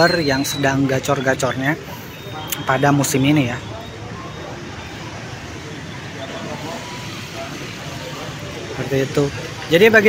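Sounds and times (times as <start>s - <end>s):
crowd talking at a distance: 0.0s - 10.0s.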